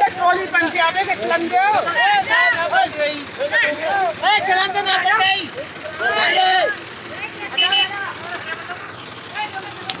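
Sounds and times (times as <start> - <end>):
men shouting and talking: 0.0 - 10.0
tractor diesel engine running: 0.0 - 10.0.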